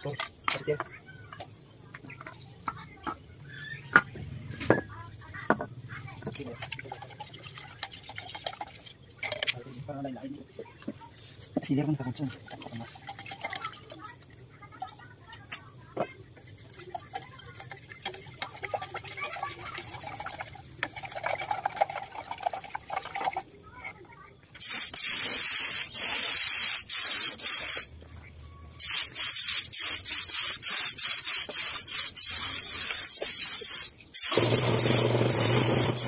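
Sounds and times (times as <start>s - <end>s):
spray gun hissing: 24.6s - 27.9s, 28.8s - 36.0s.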